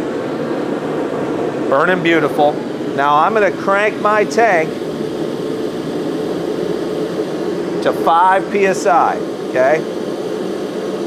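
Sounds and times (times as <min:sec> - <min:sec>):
forge burner rushing flame: 0:00.0 - 0:11.0.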